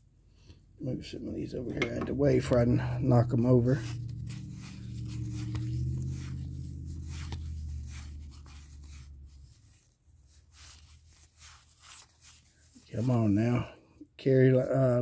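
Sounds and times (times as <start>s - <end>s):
low hum: 1.6s - 9.6s
cards sliding and flicking: 4.2s - 9.2s.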